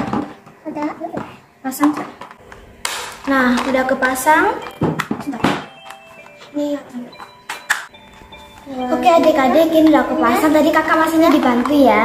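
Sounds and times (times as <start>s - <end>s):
plastic toy parts clicking and knocking: 2.8s - 6.4s
soft background music: 3.4s - 12.0s.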